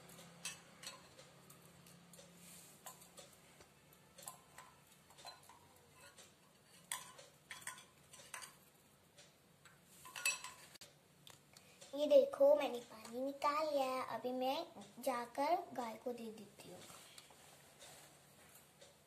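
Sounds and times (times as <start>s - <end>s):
light clicks and metallic clinks: 0.0s - 10.8s.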